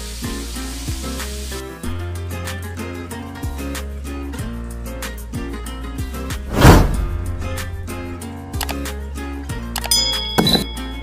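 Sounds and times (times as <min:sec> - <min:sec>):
skewers sizzling on grill: 0:00.0 - 0:02.2
background music with steady beat: 0:00.0 - 0:11.0.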